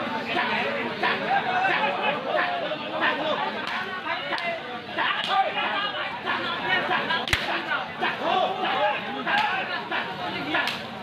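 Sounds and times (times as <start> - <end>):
people shouting: 0.2 - 10.8
sharp slap-like crack: 7.2 - 7.6, 10.6 - 10.9.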